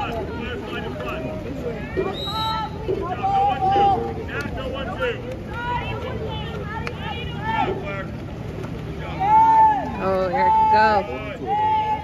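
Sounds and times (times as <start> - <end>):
spectators talking and calling out: 0.0 - 12.0
long held shout: 9.2 - 12.0.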